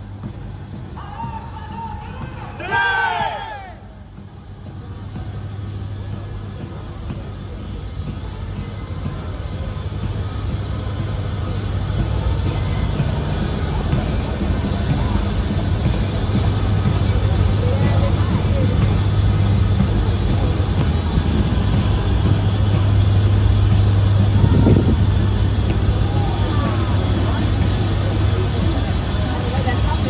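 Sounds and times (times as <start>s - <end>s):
faint voices: 0.0s - 30.0s
ship engines droning: 0.0s - 30.0s.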